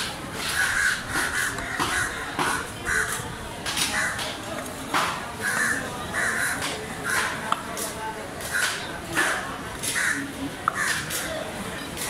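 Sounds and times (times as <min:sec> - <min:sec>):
crows cawing: 0:00.5 - 0:03.2, 0:03.9 - 0:04.3, 0:05.4 - 0:07.4, 0:09.9 - 0:11.0.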